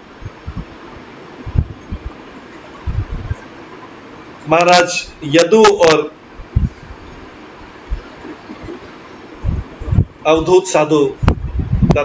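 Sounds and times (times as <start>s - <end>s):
soft low bumps: 0.0s - 0.8s, 1.4s - 2.2s, 2.8s - 3.4s, 6.4s - 7.2s, 9.4s - 10.2s
steady room noise hiss: 0.0s - 12.0s.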